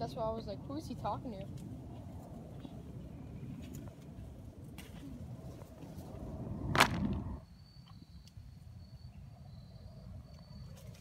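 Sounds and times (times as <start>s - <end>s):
low rumbling handling noise: 2.6s - 7.4s.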